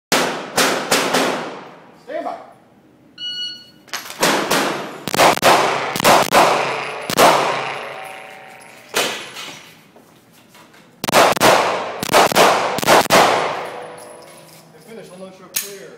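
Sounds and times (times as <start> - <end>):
short electronic beep: 3.2 - 3.8
handgun shots: 4.2 - 8.2, 11.0 - 14.2.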